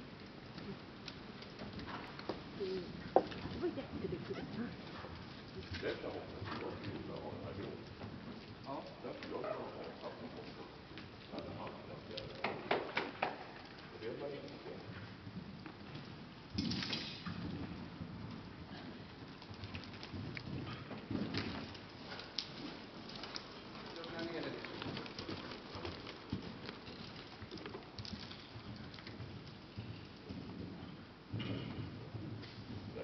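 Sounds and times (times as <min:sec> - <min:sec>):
steady noisy hiss: 0:00.0 - 0:33.0
horse hooves on sand: 0:00.2 - 0:33.0.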